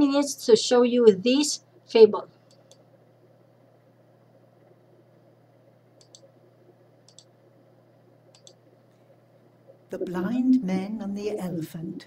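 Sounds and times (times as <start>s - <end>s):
computer mouse double clicks: 6.0s - 6.3s, 7.1s - 7.3s, 8.3s - 8.6s.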